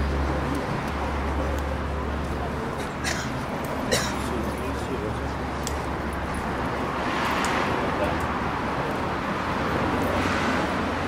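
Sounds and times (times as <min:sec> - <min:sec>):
low rumble of city street: 0:00.0 - 0:11.0.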